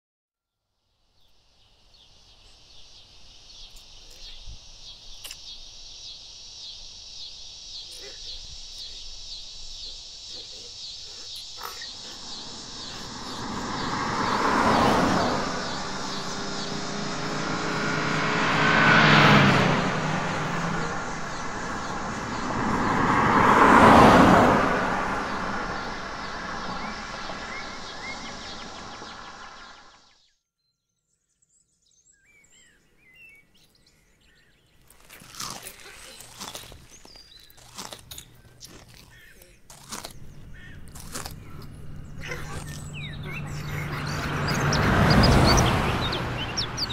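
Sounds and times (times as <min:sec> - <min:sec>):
faint bird chirps: 0:01.2 - 0:18.0
vehicles passing by: 0:06.3 - 0:30.1, 0:34.9 - 0:46.9.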